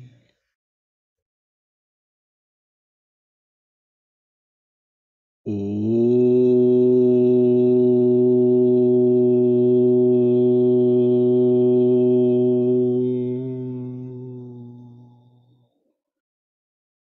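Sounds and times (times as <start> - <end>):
man chanting om: 5.5 - 15.6.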